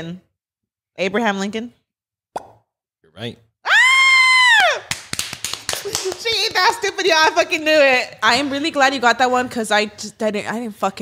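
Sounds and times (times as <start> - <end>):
high-pitched squeal of delight: 3.7 - 4.9
quick claps or taps: 4.9 - 6.8.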